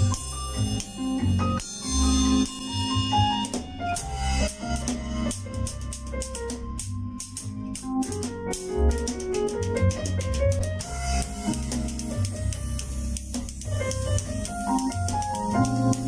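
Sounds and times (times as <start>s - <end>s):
bass line: 0.0s - 16.0s
drum kit playing: 0.0s - 16.0s
keyboard chords: 0.0s - 16.0s.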